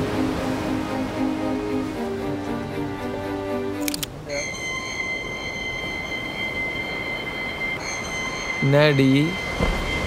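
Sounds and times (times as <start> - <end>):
music: 0.0 - 8.7
high-pitched ringing tones: 4.3 - 10.0.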